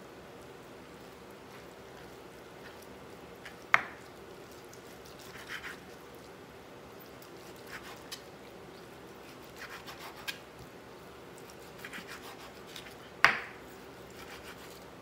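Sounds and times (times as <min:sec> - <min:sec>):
knife slicing meat on wooden board: 0:04.8 - 0:05.9, 0:07.3 - 0:08.2, 0:09.3 - 0:10.4, 0:11.4 - 0:14.8.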